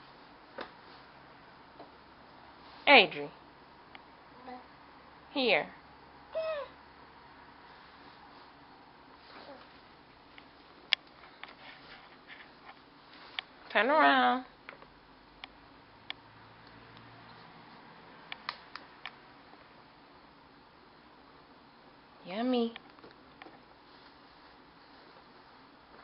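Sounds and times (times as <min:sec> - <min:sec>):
baby cooing: 0:06.3 - 0:06.8.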